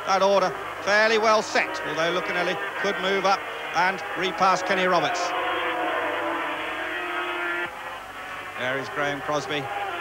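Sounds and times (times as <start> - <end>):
racing motorcycles at high revs: 4.4 - 7.8.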